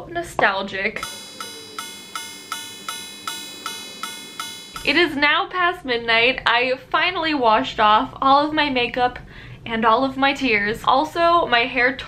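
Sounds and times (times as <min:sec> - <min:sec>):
wall clock chime striking: 0:01.0 - 0:05.6.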